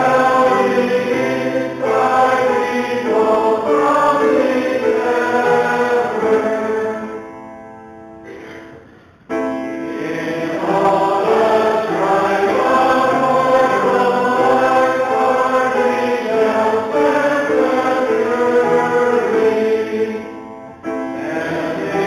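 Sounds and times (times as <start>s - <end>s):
congregation singing a hymn: 0.0s - 7.5s, 9.5s - 22.0s
keyboard accompaniment: 0.0s - 22.0s.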